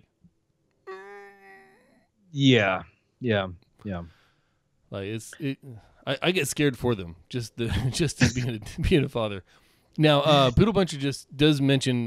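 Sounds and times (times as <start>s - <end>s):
man's held vocal tone: 10.3s - 10.6s.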